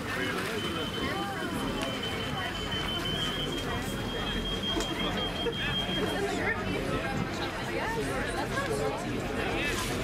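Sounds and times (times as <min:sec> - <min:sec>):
crowd babble: 0:00.0 - 0:10.0.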